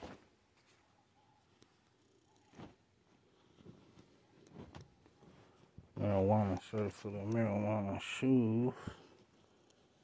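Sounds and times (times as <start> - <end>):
clothing rustling: 2.4 - 6.3.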